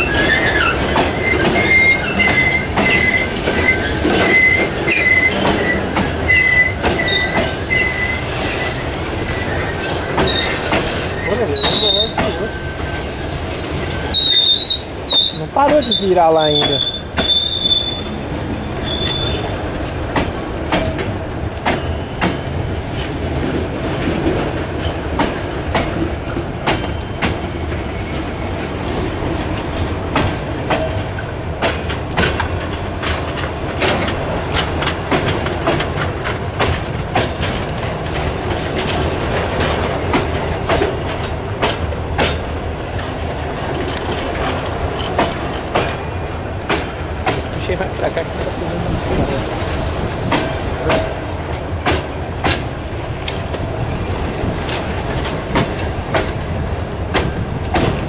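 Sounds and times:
high wheel squeal: 0:00.0 - 0:08.8, 0:09.4 - 0:19.5, 0:47.7 - 0:51.3
train wheels rumbling on rails: 0:00.0 - 0:58.0.

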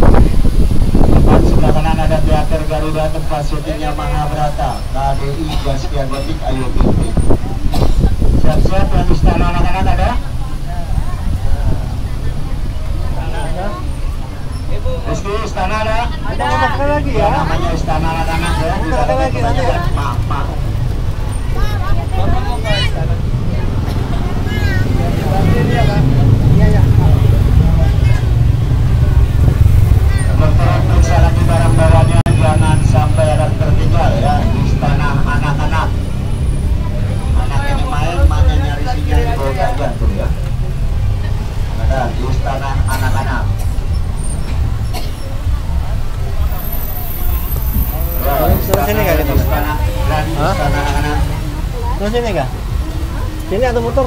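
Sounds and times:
bus engine and road rumble: 0:00.0 - 0:54.0
people talking: 0:01.2 - 0:36.0, 0:36.6 - 0:43.8, 0:44.9 - 0:54.0.

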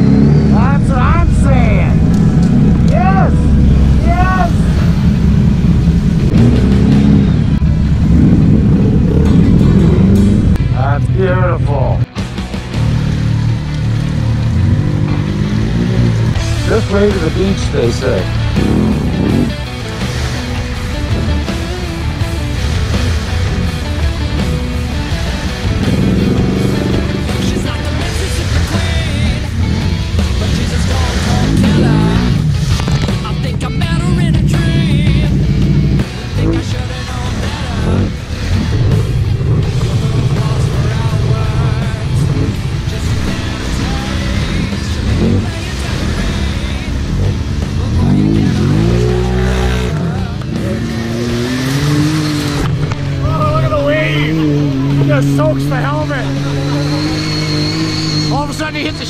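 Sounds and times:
atv engines revving: 0:00.0 - 0:59.0.

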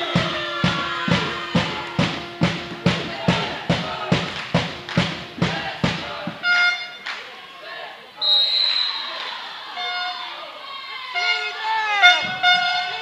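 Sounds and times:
court shoes squeaking on floor: 0:05.0 - 0:07.0, 0:11.2 - 0:13.0
referee's whistle blast: 0:06.3 - 0:07.1, 0:08.2 - 0:10.4, 0:11.2 - 0:13.0.

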